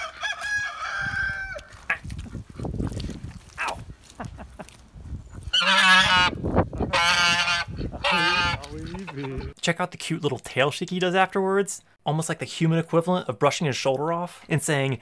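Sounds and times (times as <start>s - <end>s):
goose honking: 5.5s - 9.5s.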